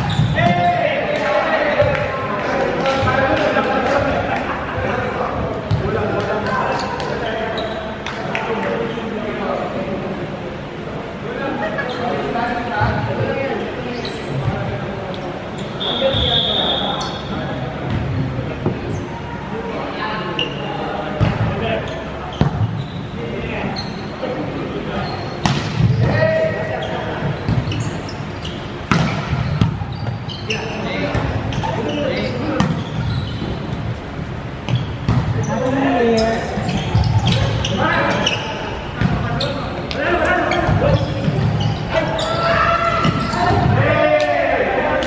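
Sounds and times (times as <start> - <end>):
players calling out: 18.9 - 45.0.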